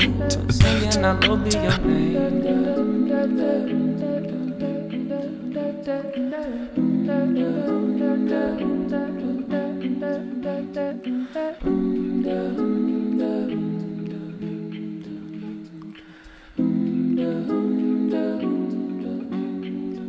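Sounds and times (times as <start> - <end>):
wordless hummed vocal: 0.0 - 16.0
keyboard sustained chords: 0.0 - 20.0.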